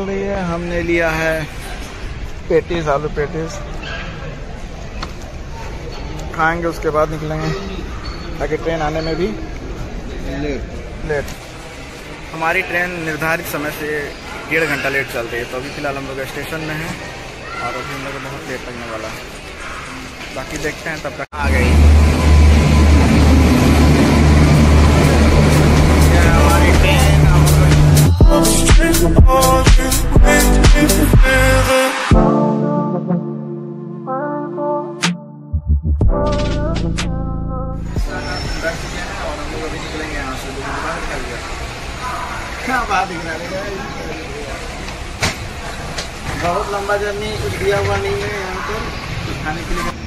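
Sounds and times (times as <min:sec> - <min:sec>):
train coach background noise: 0:00.0 - 0:28.2, 0:38.0 - 0:50.0
people talking: 0:20.4 - 0:22.4, 0:25.0 - 0:29.0, 0:38.1 - 0:44.8
electric locomotive hum: 0:21.4 - 0:29.6.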